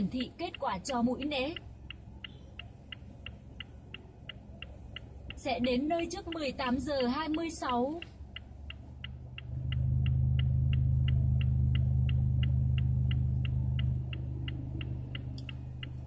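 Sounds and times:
turn signal ticking: 0.0 - 16.0.

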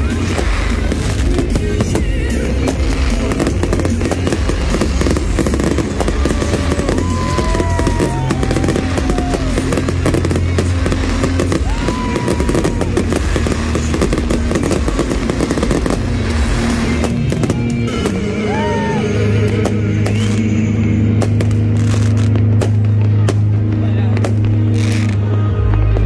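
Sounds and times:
fireworks bursting and crackling: 0.0 - 26.0
loud music with bass: 0.0 - 26.0.

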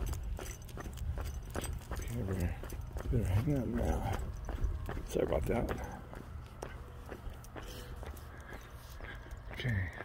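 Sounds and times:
footsteps on pavement: 0.0 - 10.0.

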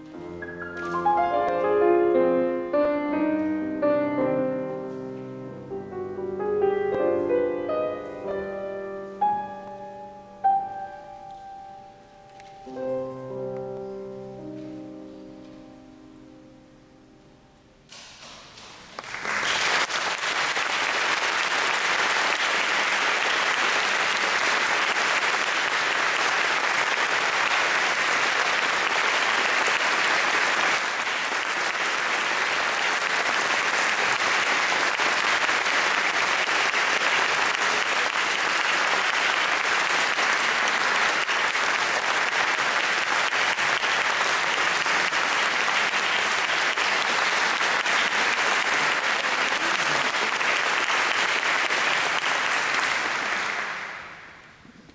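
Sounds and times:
audience applauding: 18.6 - 54.6.

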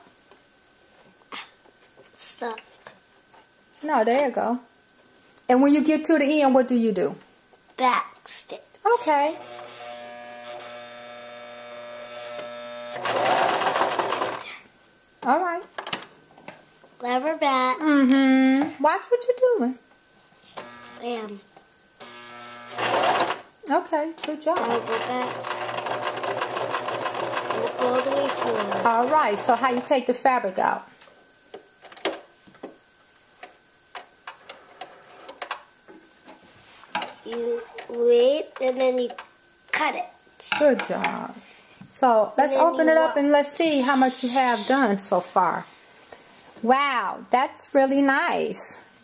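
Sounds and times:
sewing machine humming: 9.3 - 14.4, 22.1 - 23.5, 24.6 - 30.0.

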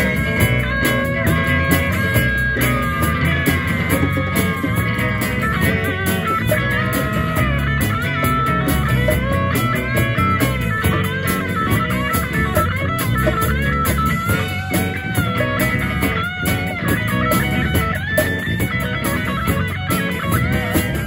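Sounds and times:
bass guitar: 0.0 - 21.0
drum kit steady beat: 0.0 - 21.0
lead electric guitar: 0.0 - 21.0.

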